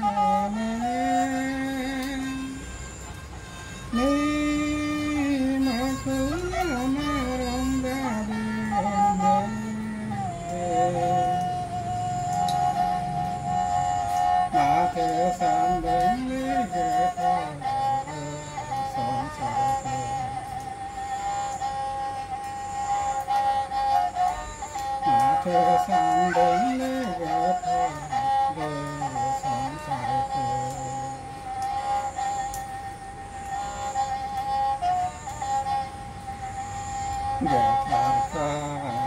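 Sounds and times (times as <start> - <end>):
bowed folk fiddle playing: 0.0 - 39.0.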